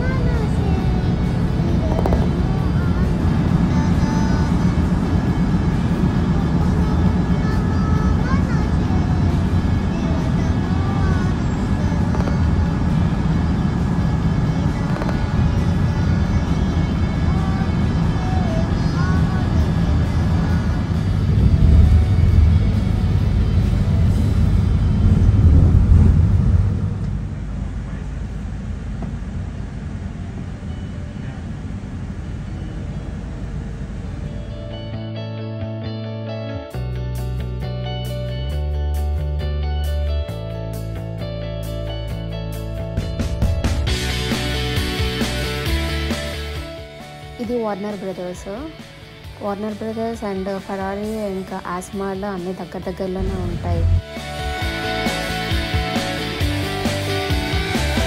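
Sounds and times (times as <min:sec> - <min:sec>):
bus engine and road rumble: 0:00.0 - 0:58.0.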